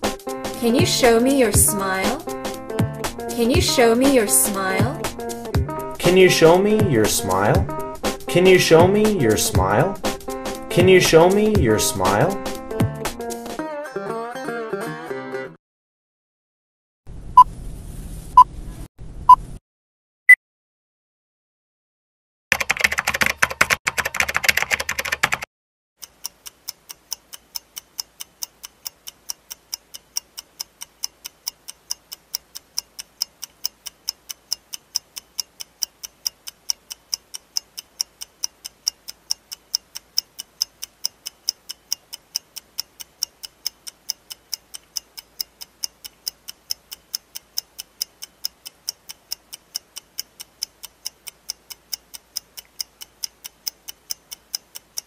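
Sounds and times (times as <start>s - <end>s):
clock ticking: 0.6s - 13.2s, 26.0s - 55.0s.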